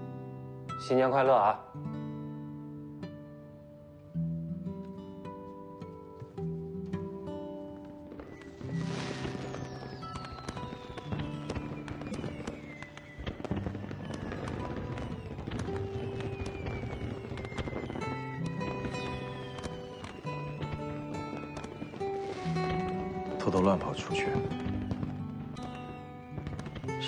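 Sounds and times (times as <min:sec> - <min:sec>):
background music: 0:00.0 - 0:27.0
fireworks crackling and popping: 0:04.3 - 0:27.0
falling firework whistles: 0:07.7 - 0:27.0.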